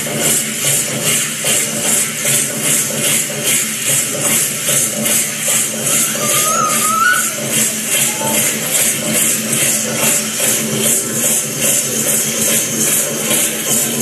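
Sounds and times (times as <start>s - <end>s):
rattles shaken: 2.6s - 14.0s
dance music with steady beat: 5.5s - 10.2s.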